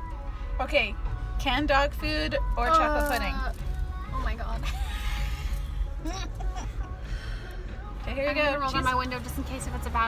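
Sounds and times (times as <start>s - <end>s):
car cabin rumble: 0.6s - 10.0s.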